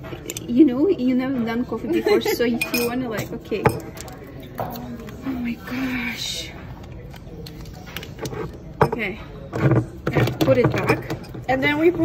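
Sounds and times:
spoon clinking against glass: 0:02.3 - 0:04.0.

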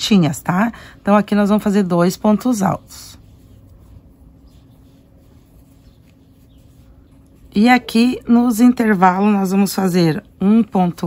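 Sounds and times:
low steady hum: 0:00.0 - 0:11.0
twine rustling through stitches: 0:00.0 - 0:11.0.

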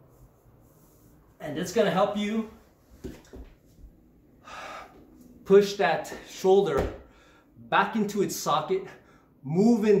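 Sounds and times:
man breathing: 0:04.3 - 0:05.3, 0:07.0 - 0:07.6
thuds on hardwood floor: 0:06.8 - 0:07.1.

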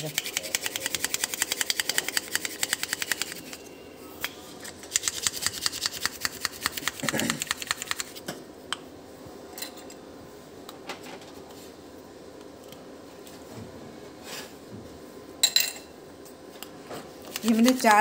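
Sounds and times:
utensil clicking against ceramic bowl: 0:00.1 - 0:03.5.

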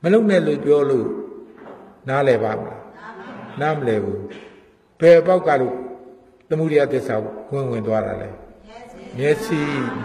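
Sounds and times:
man lecturing into microphone: 0:00.0 - 0:02.9, 0:03.5 - 0:10.0.

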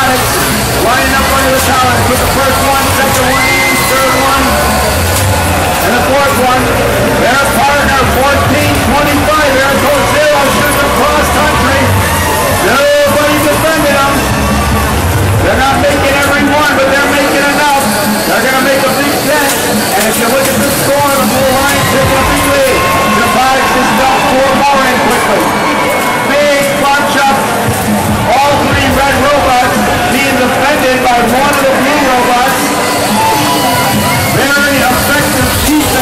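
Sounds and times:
echoing announcer voice: 0:00.0 - 0:36.0
large crowd hubbub: 0:00.0 - 0:36.0
man speaking over loudspeakers: 0:00.0 - 0:36.0.

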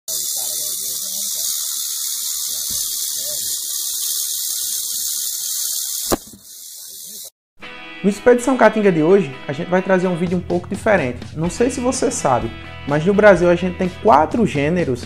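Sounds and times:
rattlesnake rattling: 0:00.1 - 0:07.3.

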